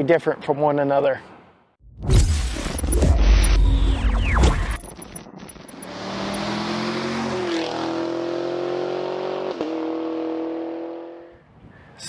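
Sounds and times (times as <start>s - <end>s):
car engine at steady revs: 5.7s - 11.2s.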